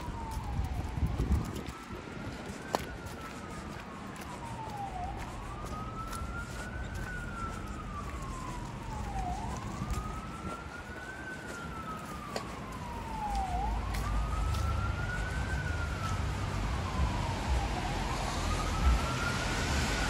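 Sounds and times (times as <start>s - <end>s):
emergency vehicle siren wailing: 0.0s - 20.0s
low rumble of city traffic: 0.0s - 20.0s.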